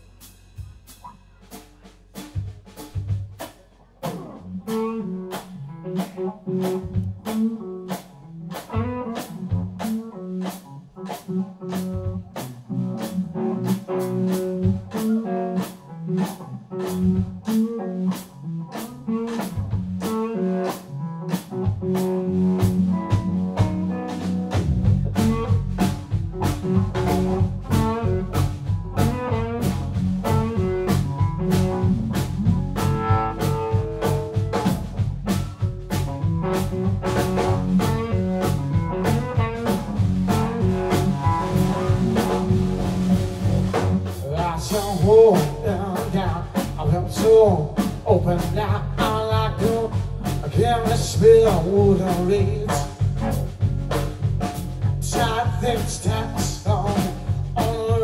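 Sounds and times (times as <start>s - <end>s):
bass guitar: 0.0s - 58.0s
drum kit beat: 0.0s - 58.0s
electric guitar: 4.0s - 58.0s.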